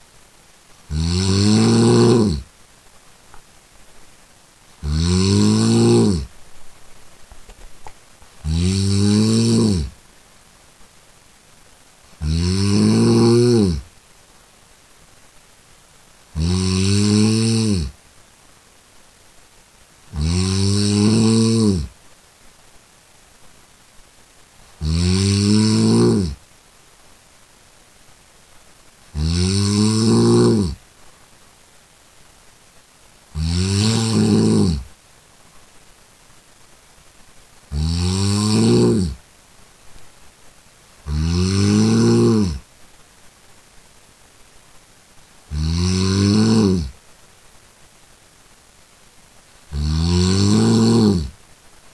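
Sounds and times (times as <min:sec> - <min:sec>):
person snoring: 0:00.9 - 0:02.5, 0:04.8 - 0:06.3, 0:08.4 - 0:10.0, 0:12.2 - 0:13.9, 0:16.4 - 0:18.0, 0:20.1 - 0:21.9, 0:24.8 - 0:26.4, 0:29.1 - 0:30.8, 0:33.4 - 0:34.9, 0:37.7 - 0:39.2, 0:41.0 - 0:42.6, 0:45.5 - 0:46.9, 0:49.7 - 0:51.3.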